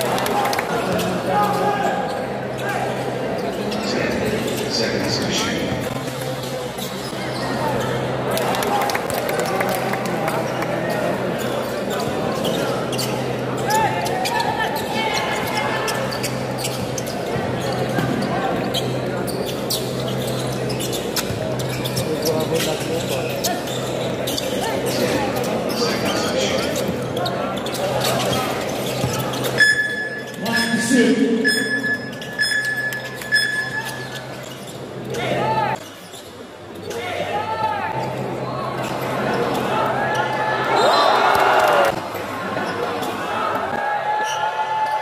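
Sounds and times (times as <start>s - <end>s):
spectator chatter and shouting: 0.0s - 45.0s.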